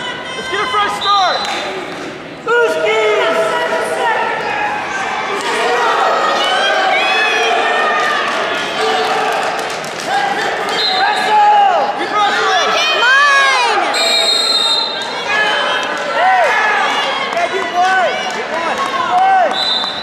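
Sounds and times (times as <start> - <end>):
coaches and spectators shouting: 0.0 - 20.0
referee's whistle blast: 13.9 - 15.0, 19.5 - 20.0.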